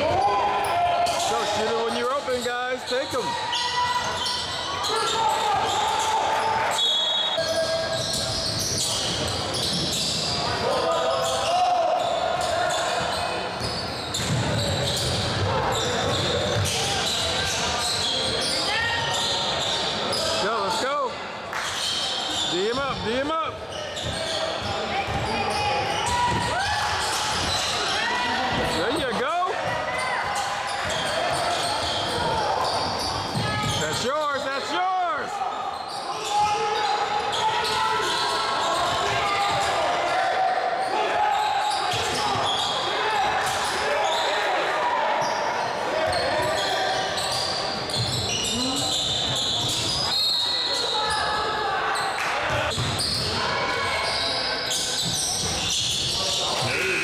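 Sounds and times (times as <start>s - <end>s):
sneakers squeaking: 0.0s - 20.8s, 21.5s - 57.0s
players calling out: 52.2s - 57.0s.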